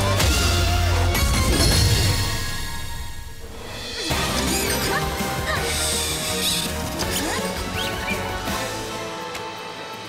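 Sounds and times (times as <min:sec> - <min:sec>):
cartoon action music: 0:03.9 - 0:09.2.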